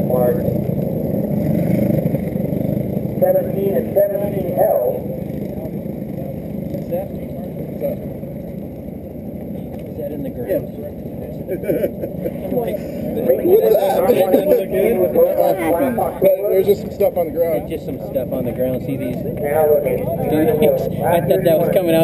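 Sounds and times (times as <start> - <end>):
people talking: 0.0 - 0.7, 3.2 - 8.1, 9.5 - 22.0
racing kart engines drone: 0.0 - 22.0.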